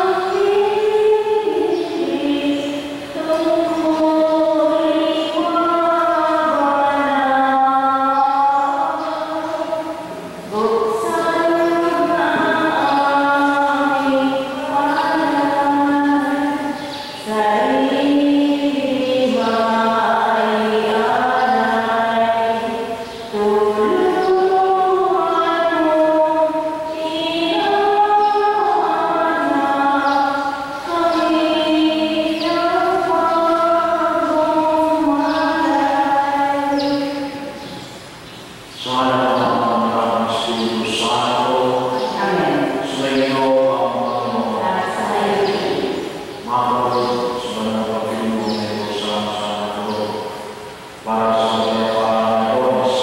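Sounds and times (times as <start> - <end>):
liturgical chant: 0.0 - 38.0, 38.7 - 53.0.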